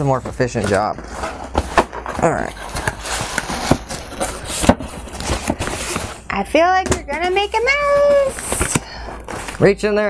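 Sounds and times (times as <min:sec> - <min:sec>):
cardboard and packing rustling: 0:00.0 - 0:10.0.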